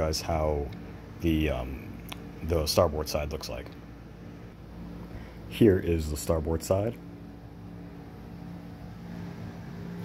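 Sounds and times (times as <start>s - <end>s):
steady low hum with hiss: 0.0s - 10.0s.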